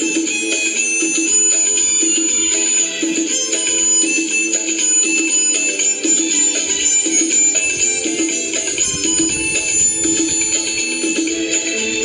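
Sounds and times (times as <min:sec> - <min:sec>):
harmonica melody: 0:00.0 - 0:12.0
rhythmic musical accompaniment: 0:00.0 - 0:12.0.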